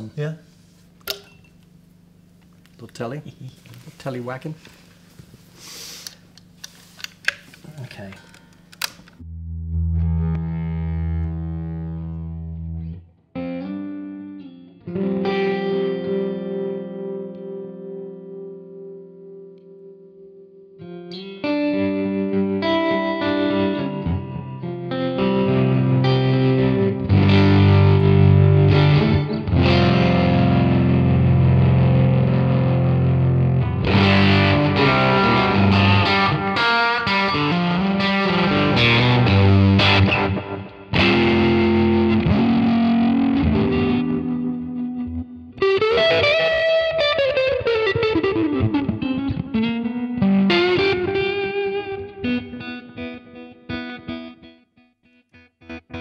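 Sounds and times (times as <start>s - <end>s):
electric guitar through an amp: 7.2s - 56.0s.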